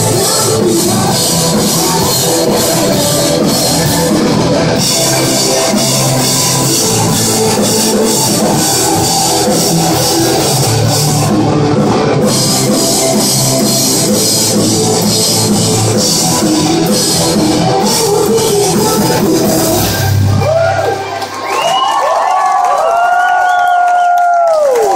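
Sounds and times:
live rock band playing: 0.0s - 21.5s
crowd cheering and shouting: 0.0s - 24.9s.

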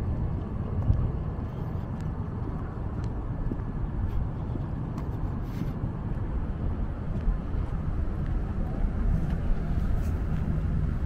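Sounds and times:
distant traffic: 0.0s - 11.0s
wind on microphone: 0.0s - 11.0s.

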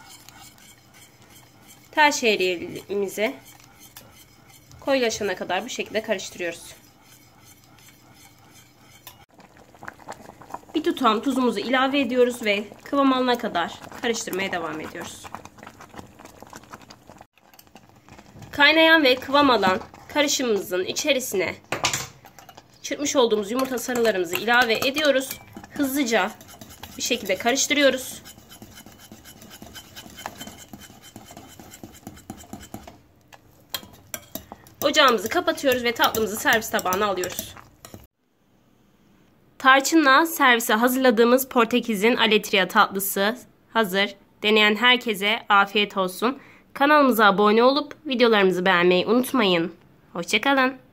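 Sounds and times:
stirring milk in a pot: 0.0s - 21.6s, 22.2s - 38.2s.

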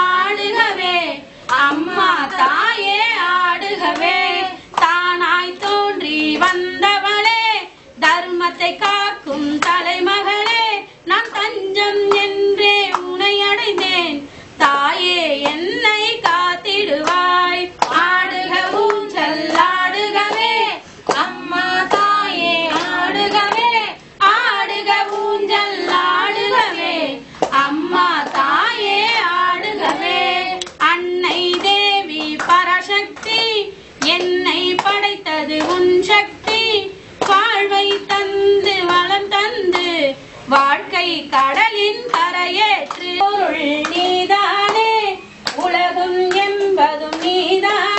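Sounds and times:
woman singing devotional song: 0.0s - 47.9s.

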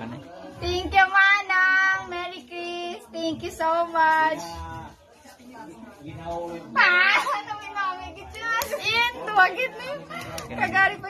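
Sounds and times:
children chattering and exclaiming: 0.0s - 11.0s.

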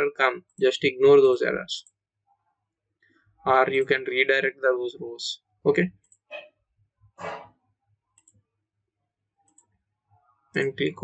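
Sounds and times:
computer mouse clicks: 8.2s - 8.4s, 9.5s - 9.7s.

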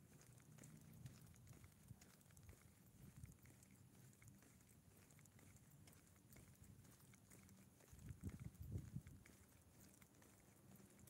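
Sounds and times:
low rumble on microphone: 8.0s - 9.1s.

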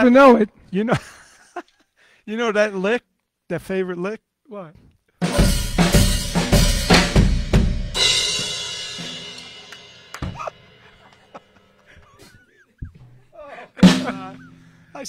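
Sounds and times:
drum kit fill: 5.2s - 12.0s, 13.8s - 15.0s
drum hit: 5.3s - 9.4s, 13.8s - 14.5s.

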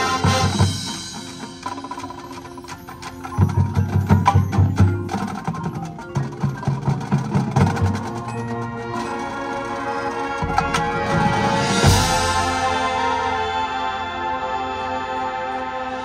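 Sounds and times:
marching band playing: 0.0s - 16.0s.

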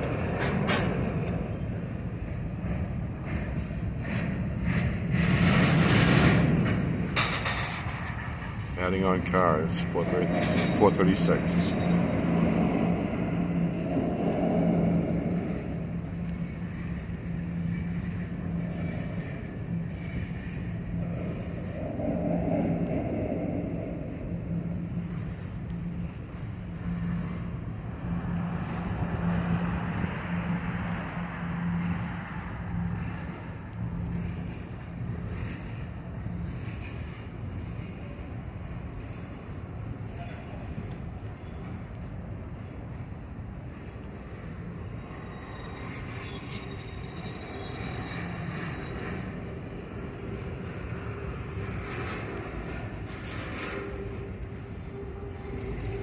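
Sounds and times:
freight cars rolling on rails: 0.0s - 56.0s
steady low hum: 0.0s - 56.0s.

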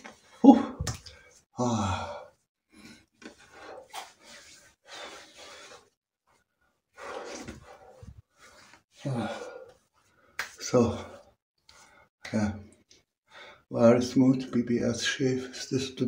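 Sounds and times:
man breathing hard and sighing: 0.2s - 4.2s, 9.0s - 9.8s
hands patting face: 10.3s - 10.7s.

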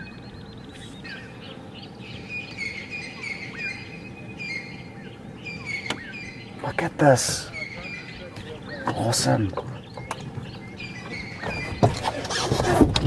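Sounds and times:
upward-sweeping bird whistles: 0.0s - 6.6s, 9.8s - 12.0s
fast bird trill: 0.0s - 12.4s
birds chirping: 0.0s - 13.0s
steady low background hum: 0.0s - 13.0s.

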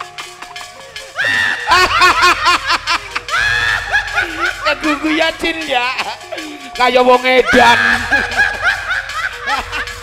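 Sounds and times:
man laughing into a microphone: 1.2s - 6.8s, 7.4s - 10.0s.

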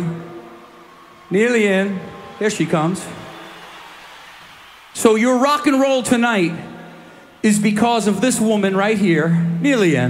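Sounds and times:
low crowd and stage noise: 0.0s - 10.0s.

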